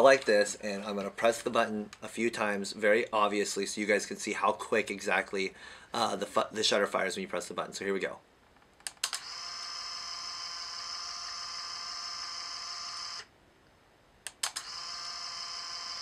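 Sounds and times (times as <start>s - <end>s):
camera motor whir: 9.0s - 13.3s, 14.4s - 16.0s.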